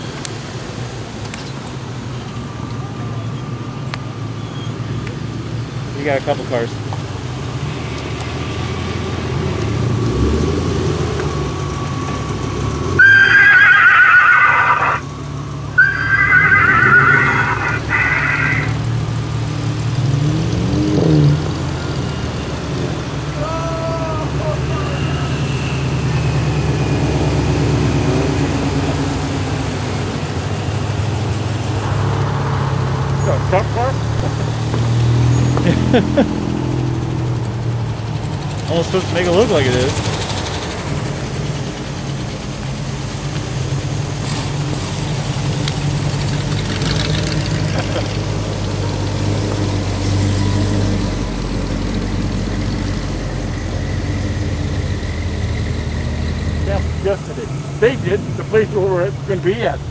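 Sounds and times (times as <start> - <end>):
cars driving past slowly: 0.0 - 59.9
high-pitched wavering squeals: 13.0 - 15.1, 15.7 - 18.8.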